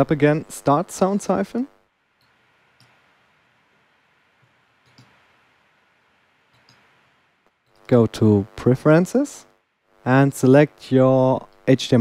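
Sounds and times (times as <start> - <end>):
low hiss: 0.0 - 12.0
computer mouse and keyboard clicks: 4.8 - 5.2.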